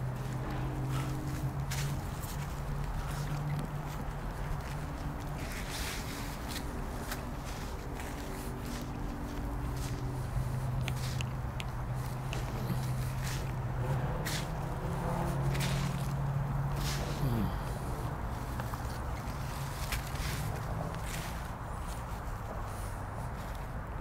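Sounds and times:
steady low hum: 0.0s - 23.6s.

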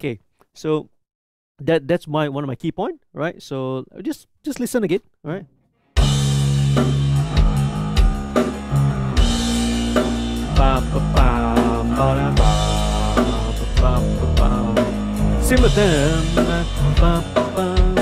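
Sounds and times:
bass guitar: 6.0s - 18.0s
drum kit: 6.0s - 18.0s
electric guitar: 6.0s - 18.0s
rock song playing: 6.0s - 18.0s.

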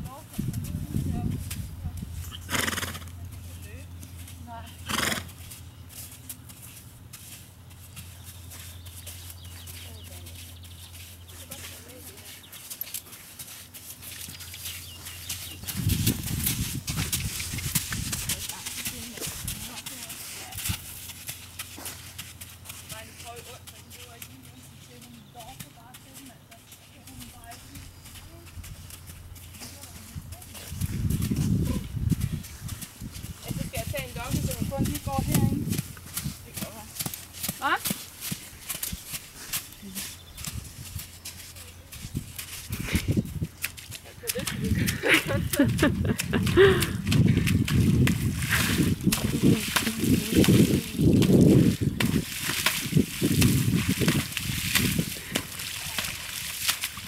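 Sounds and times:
horse hoofbeats on sand: 0.0s - 57.0s.

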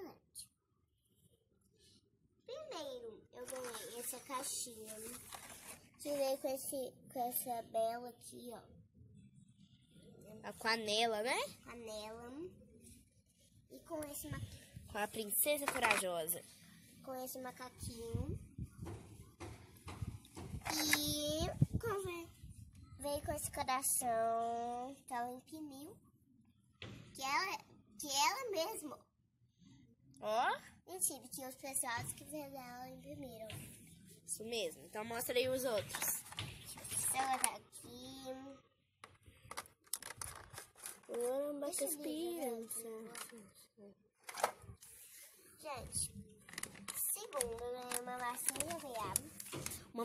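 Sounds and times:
toys and packaging handling noise: 3.4s - 6.4s, 14.1s - 16.5s, 20.5s - 21.2s, 35.3s - 38.2s, 39.0s - 43.6s, 44.2s - 50.0s
toy taps and handling: 15.5s - 16.1s, 35.7s - 37.6s, 39.0s - 41.8s, 43.1s - 43.4s, 46.5s - 49.8s.

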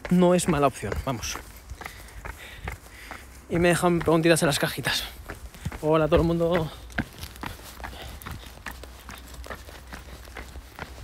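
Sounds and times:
footsteps walking: 0.0s - 11.0s.

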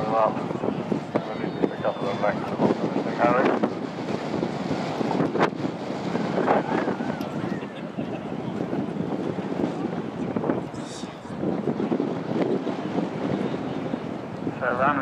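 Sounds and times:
faint voices: 0.0s - 4.9s, 5.6s - 15.0s
wind buffeting microphone: 0.0s - 15.0s.

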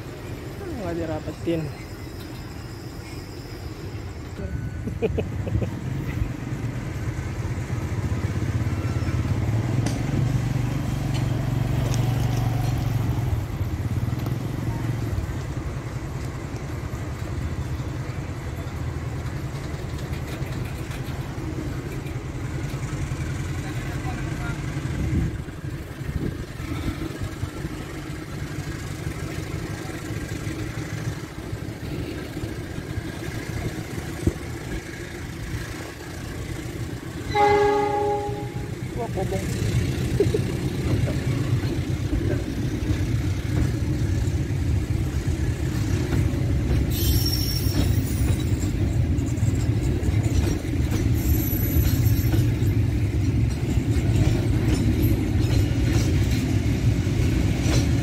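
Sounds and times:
train wagons rumbling on rails: 0.0s - 58.0s.

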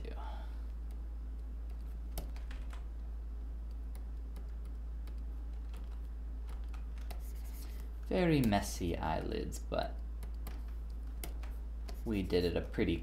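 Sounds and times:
steady low hum: 0.0s - 13.0s
keyboard keys clicking: 0.9s - 2.9s, 3.6s - 7.2s.

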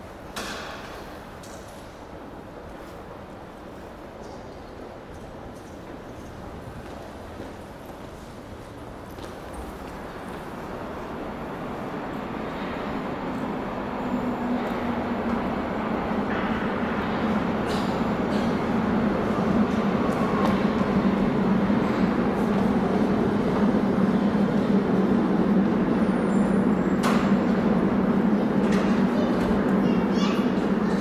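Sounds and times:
train running through tunnel: 0.0s - 31.0s.

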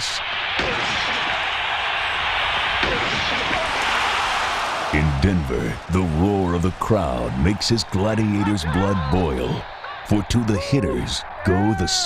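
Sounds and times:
stadium crowd cheering: 0.0s - 12.0s.

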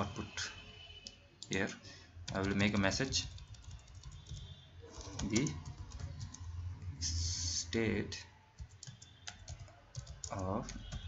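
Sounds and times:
computer keyboard typing: 1.0s - 7.6s, 8.5s - 11.0s.

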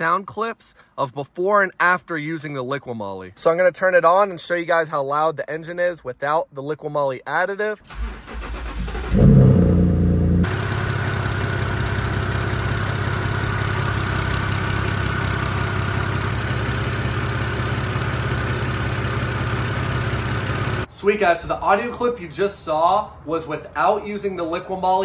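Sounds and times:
car engine starting and idling: 7.8s - 20.9s
engine ticking: 8.0s - 20.9s.

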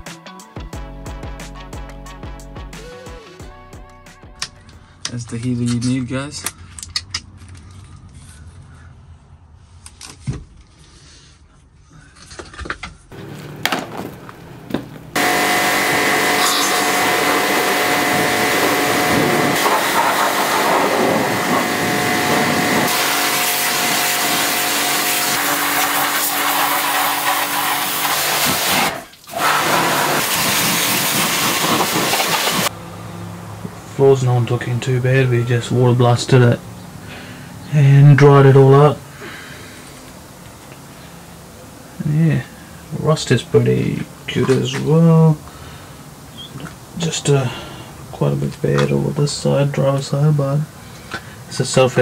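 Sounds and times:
cleaning machine motor hissing: 13.1s - 32.8s.

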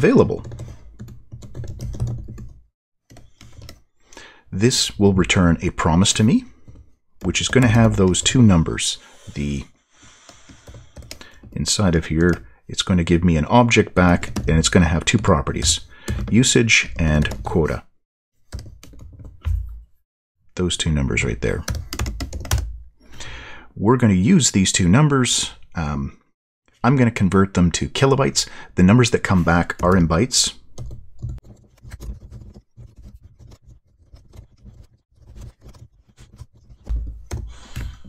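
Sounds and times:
computer keyboard typing: 0.4s - 3.8s, 6.2s - 8.5s, 10.3s - 11.6s, 15.6s - 16.4s, 18.5s - 19.4s, 21.6s - 22.7s, 30.8s - 35.9s.

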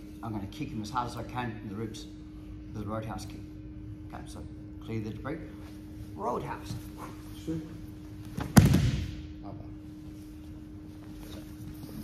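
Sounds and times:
body thudding onto mat: 8.3s - 9.2s.

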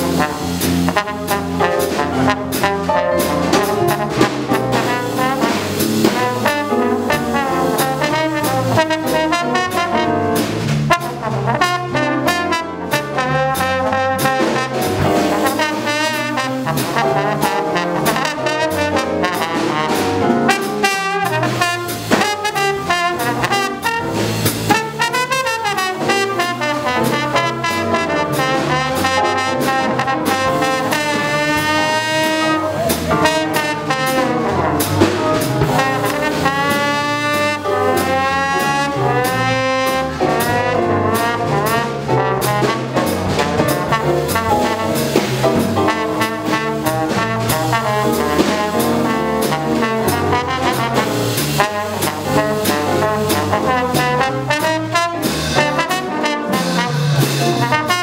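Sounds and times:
cymbal and drum strokes: 0.0s - 13.0s, 13.6s - 58.0s
jazz band playing: 0.0s - 58.0s
trombone lead line: 0.0s - 58.0s.

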